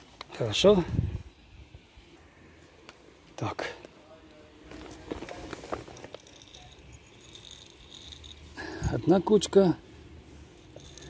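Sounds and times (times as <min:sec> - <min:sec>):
kibble clicks and rattles: 0:04.7 - 0:09.1, 0:10.6 - 0:11.0
pellets spilling on stone: 0:04.8 - 0:08.4.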